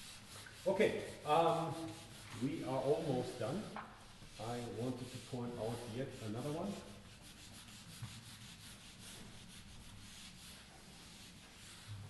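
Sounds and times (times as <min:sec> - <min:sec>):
eraser wiping whiteboard: 0:00.0 - 0:12.0.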